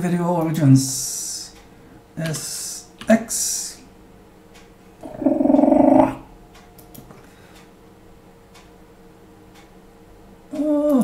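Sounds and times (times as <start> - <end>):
rough growl-like voice: 5.0 - 6.2.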